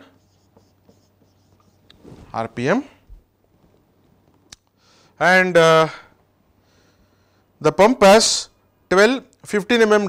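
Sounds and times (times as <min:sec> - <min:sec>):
marker writing on whiteboard: 0:00.0 - 0:02.5.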